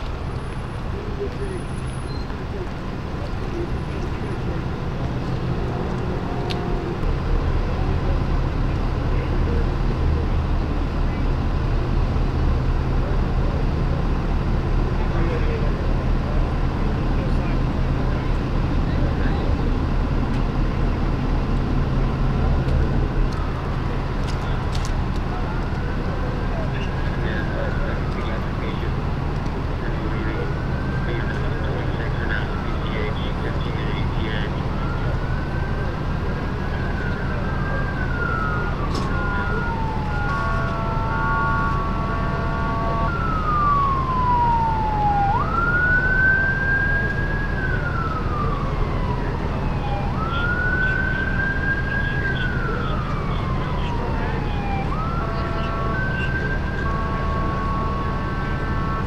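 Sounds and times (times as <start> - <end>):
diesel engines idling: 0.0 - 59.0
indistinct voices: 22.2 - 59.0.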